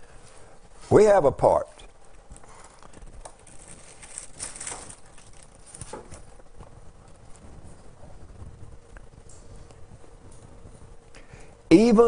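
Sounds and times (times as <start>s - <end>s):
pages rustling: 2.2s - 7.8s.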